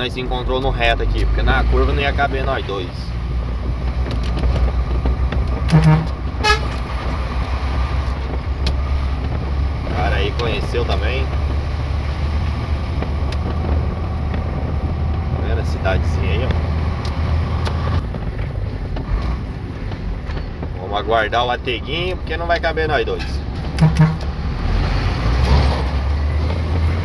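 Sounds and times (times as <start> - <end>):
truck engine drone: 0.0 - 20.8, 21.5 - 27.0
road and cab noise: 0.0 - 27.0.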